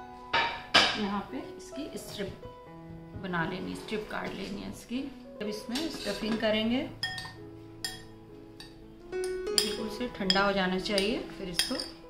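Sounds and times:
soft background music: 0:00.0 - 0:12.0
metal spoon clinking glass bowl: 0:07.0 - 0:12.0.

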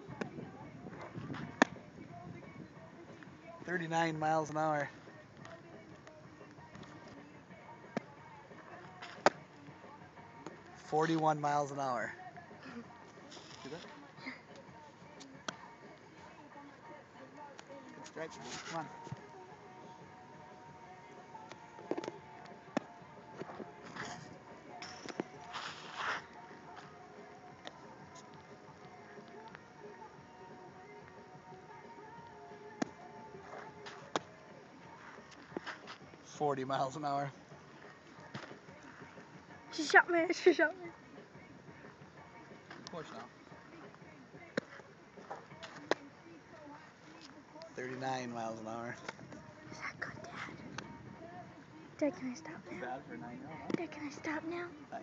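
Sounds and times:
softball smacking: 0:01.0 - 0:01.8, 0:09.0 - 0:09.6, 0:21.4 - 0:24.0, 0:32.8 - 0:34.4, 0:53.6 - 0:53.8
softball landing smack: 0:01.4 - 0:01.8, 0:09.0 - 0:09.5, 0:32.8 - 0:34.3.

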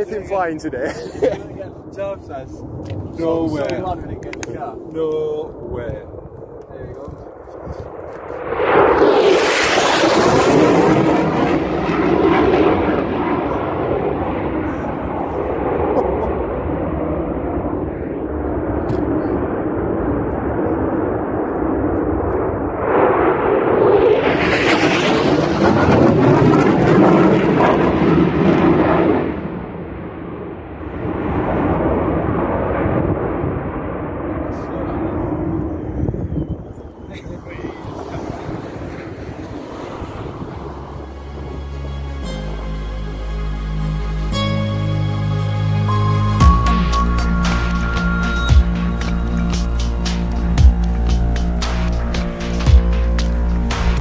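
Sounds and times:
jet engine roar overhead: 0:00.0 - 0:42.5, 0:45.3 - 0:54.0.

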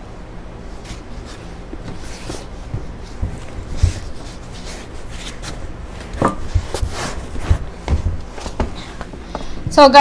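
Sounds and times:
kneading bag rustling and rubbing: 0:00.8 - 0:09.0.

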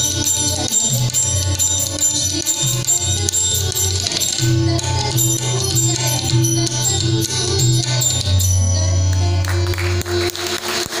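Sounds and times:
harmonium sustained note: 0:00.0 - 0:11.0
tabla strikes: 0:00.0 - 0:11.0.

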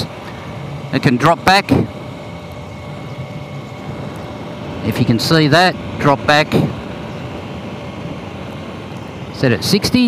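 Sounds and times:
wind and road noise: 0:00.0 - 0:10.0.

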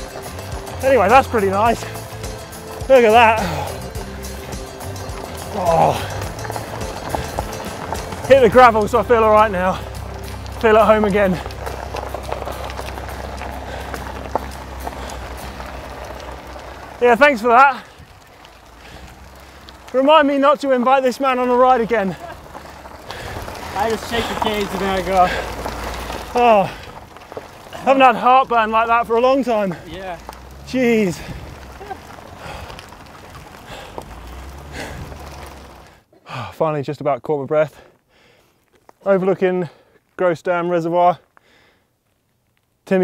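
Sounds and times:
low rumble: 0:00.0 - 0:20.0
small stone clicks: 0:00.0 - 0:36.0
bike tyres crunching on gravel: 0:00.0 - 0:43.0
person breathing hard: 0:13.3 - 0:15.7, 0:23.1 - 0:23.6, 0:32.4 - 0:32.9, 0:33.6 - 0:35.3, 0:38.1 - 0:38.6, 0:41.4 - 0:41.9.

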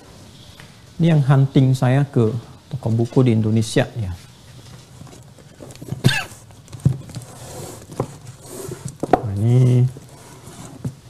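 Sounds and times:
books knocking and rustling: 0:04.7 - 0:11.0.

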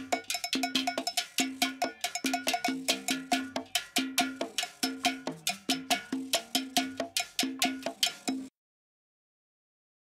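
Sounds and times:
cowbell and hand percussion groove: 0:00.0 - 0:08.5.

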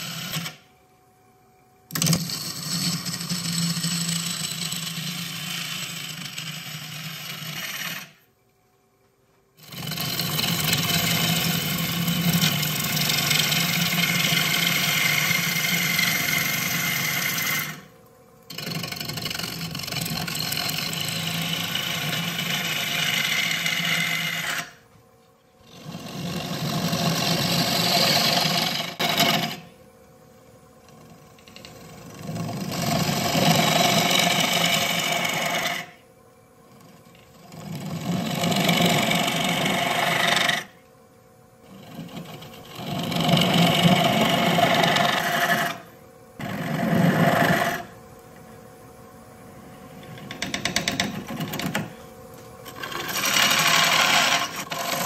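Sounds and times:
lathe hum: 0:00.0 - 0:00.7, 0:01.5 - 0:08.3, 0:09.6 - 0:55.0
gouge shaving wood on lathe: 0:02.0 - 0:08.2, 0:09.6 - 0:17.9, 0:18.5 - 0:24.8, 0:25.6 - 0:29.6, 0:31.0 - 0:36.0, 0:37.0 - 0:40.7, 0:41.7 - 0:45.8, 0:46.4 - 0:47.9, 0:52.6 - 0:55.0.

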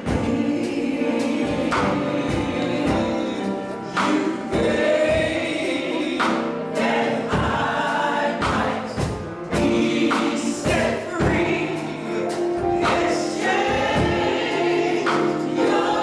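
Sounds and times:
drum strikes: 0:00.0 - 0:15.8
choir singing gospel song: 0:00.0 - 0:16.0.

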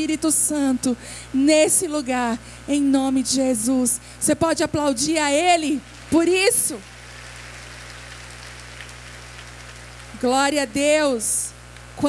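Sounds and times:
low electrical hum: 0:00.0 - 0:12.0
congregation applauding: 0:06.8 - 0:10.1.

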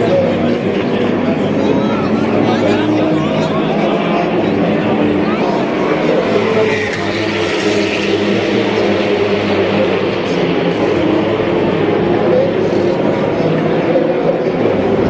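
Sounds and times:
crowd voices: 0:00.0 - 0:15.0
race car engines droning: 0:00.0 - 0:15.0.

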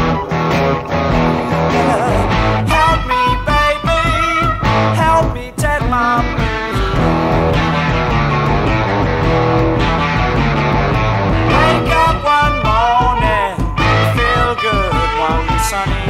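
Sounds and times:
blues-rock backing band: 0:00.0 - 0:16.0
electric guitar lead: 0:00.0 - 0:16.0.

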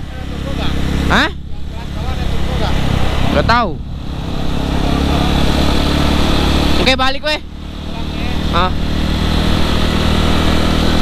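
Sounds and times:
motorcycle engine cruising: 0:00.0 - 0:11.0
wind and road noise: 0:00.0 - 0:11.0.

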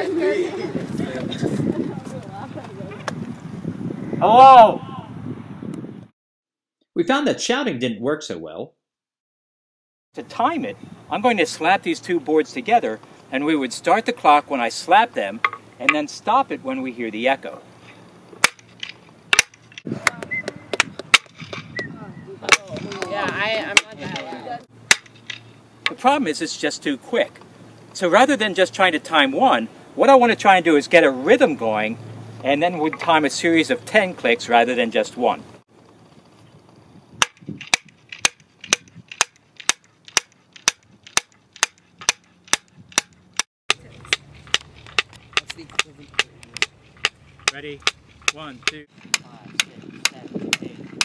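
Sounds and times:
wood blocks clapping: 0:15.4 - 0:16.1, 0:18.4 - 0:21.7, 0:22.5 - 0:26.0, 0:37.2 - 0:50.7
wooden boards slapping together: 0:18.4 - 0:21.6, 0:22.5 - 0:26.0, 0:37.2 - 0:43.2.

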